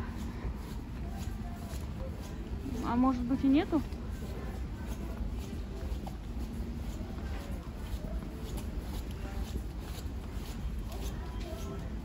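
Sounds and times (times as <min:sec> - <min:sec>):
faint distant voices: 0:00.0 - 0:12.0
shuffling footsteps: 0:00.0 - 0:12.0.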